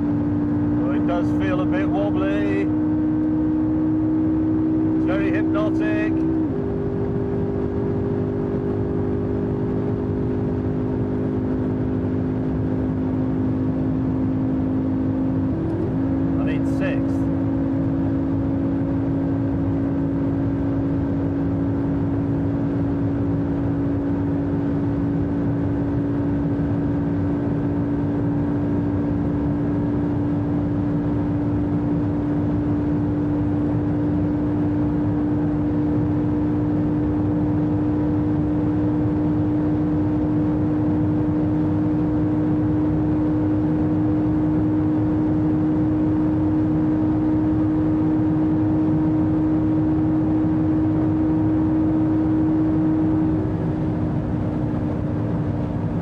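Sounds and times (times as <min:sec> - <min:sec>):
car engine droning: 0:00.0 - 0:56.0
road and wind noise: 0:00.0 - 0:56.0.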